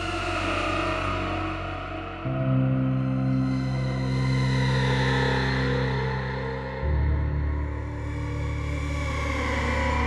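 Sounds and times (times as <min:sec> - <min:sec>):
dark ambient music: 0:00.0 - 0:10.0.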